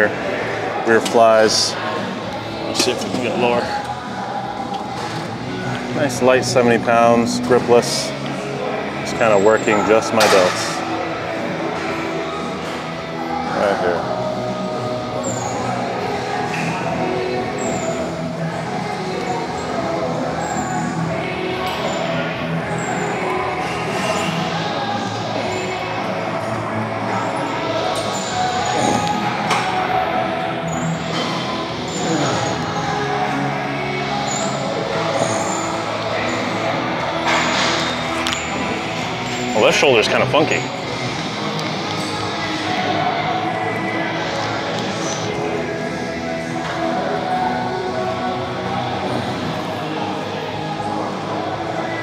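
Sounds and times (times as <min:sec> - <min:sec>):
background music: 0:00.0 - 0:52.0.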